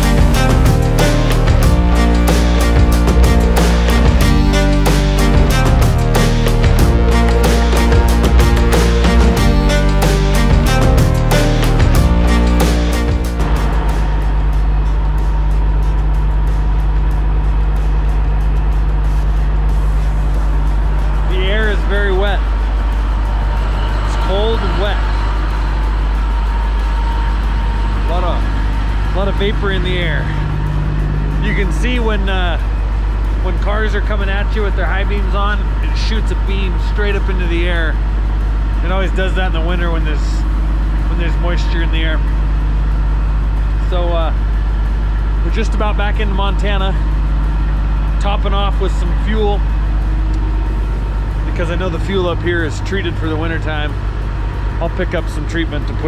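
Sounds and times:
diesel truck engine idling: 0:00.0 - 0:56.0
man talking: 0:21.3 - 0:22.4, 0:24.1 - 0:25.0, 0:28.1 - 0:28.5, 0:29.1 - 0:30.4, 0:31.4 - 0:32.6, 0:33.4 - 0:38.0, 0:38.8 - 0:40.4, 0:41.1 - 0:42.2, 0:43.8 - 0:44.4, 0:45.4 - 0:47.0, 0:48.2 - 0:49.6, 0:51.4 - 0:54.0, 0:54.8 - 0:56.0.

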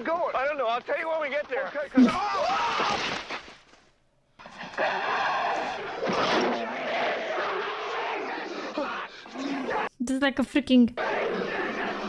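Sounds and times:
people yelling: 0:02.0 - 0:03.2, 0:04.6 - 0:09.9, 0:11.0 - 0:12.0.

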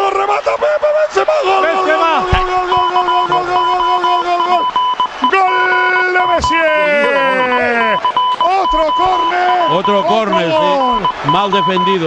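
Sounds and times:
commentator's drawn-out goal cry: 0:00.0 - 0:12.0
rapid electronic beeping: 0:02.6 - 0:12.0.

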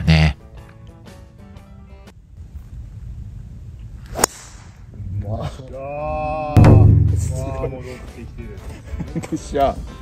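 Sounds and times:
golf ball impact crack: 0:04.0 - 0:04.8.

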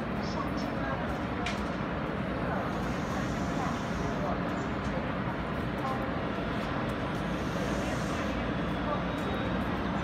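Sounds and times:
train motors and wheels rumbling: 0:00.0 - 0:10.0.

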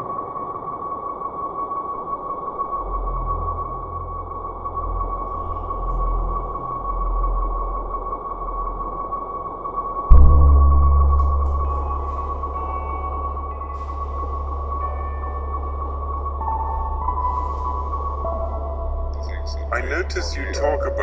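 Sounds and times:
low pulsing rumble: 0:02.9 - 0:21.0
high sustained tone: 0:10.1 - 0:21.0.

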